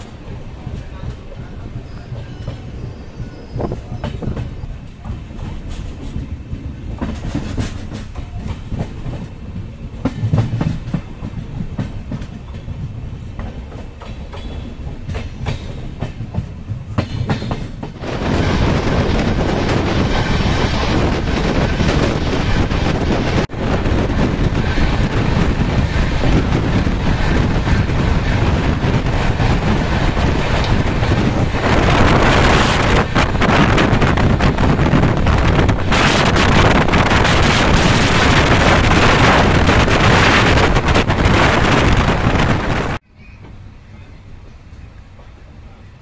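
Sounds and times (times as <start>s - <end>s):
wind buffeting microphone: 0.0s - 43.0s
train running at speed: 0.0s - 46.0s.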